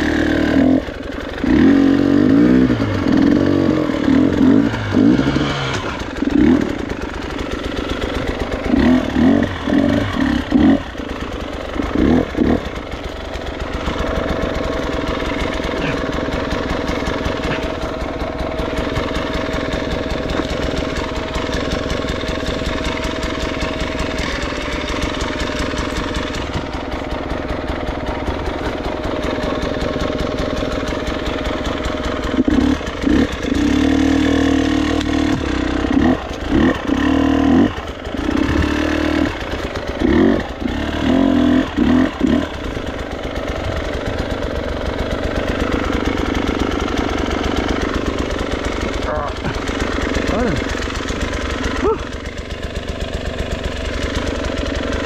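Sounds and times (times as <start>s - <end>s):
motorcycle engine idling: 0.0s - 55.0s
motorcycle throttle blips: 0.0s - 55.0s.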